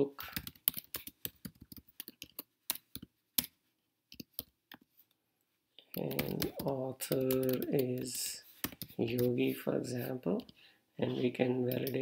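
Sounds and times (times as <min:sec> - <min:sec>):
computer keyboard typing: 0:00.2 - 0:04.6, 0:05.9 - 0:09.3.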